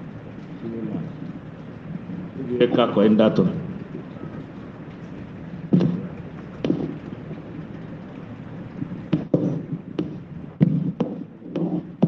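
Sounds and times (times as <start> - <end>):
low rumbling hiss: 0.0 - 12.0
person speaking: 2.3 - 4.5.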